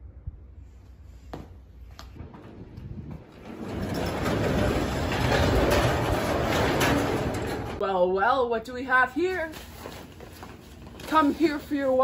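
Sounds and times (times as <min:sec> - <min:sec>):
metal roll-up door rattling: 0:02.2 - 0:07.8.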